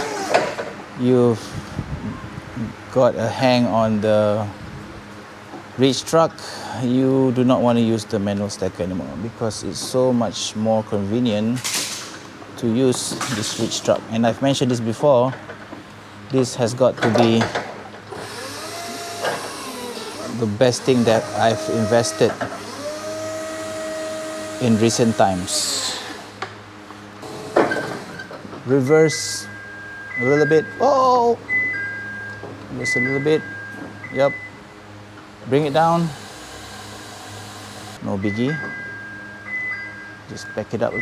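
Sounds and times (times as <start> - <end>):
electric forklift motor whirring: 0.0 - 0.8, 18.1 - 26.6, 27.2 - 28.4, 35.4 - 38.0.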